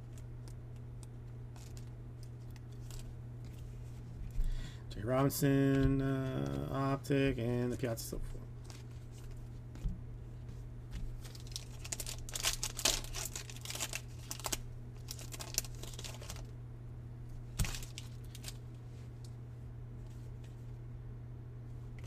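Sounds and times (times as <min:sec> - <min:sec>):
foil wrapper crinkling and tearing: 0:00.0 - 0:03.1, 0:11.2 - 0:16.5, 0:17.5 - 0:18.6.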